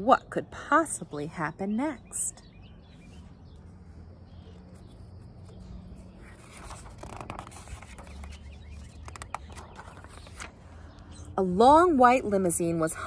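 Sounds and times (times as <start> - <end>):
book pages turning: 3.6 - 10.8
paper crackles: 4.5 - 10.7.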